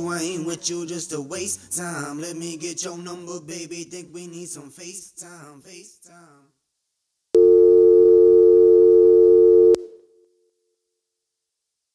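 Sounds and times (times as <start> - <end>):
two-pitch telephone tone: 7.4 - 10.1.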